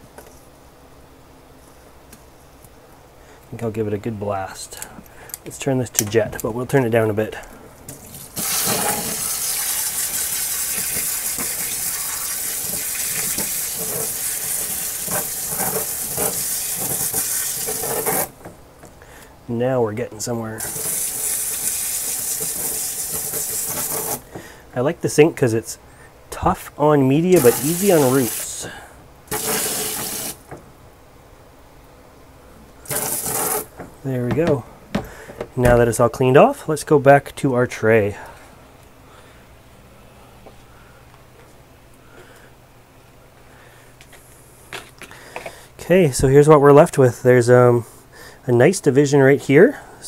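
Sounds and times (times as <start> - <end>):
water spraying from nozzle: 8.1 - 18.3, 20.6 - 24.2, 27.3 - 28.6, 29.3 - 30.4, 32.9 - 33.7.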